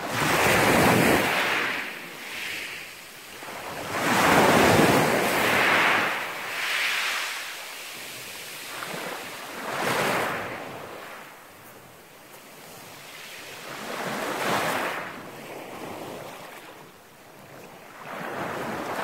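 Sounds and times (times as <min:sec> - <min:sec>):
waves breaking on pebble beach: 0:00.0 - 0:16.7.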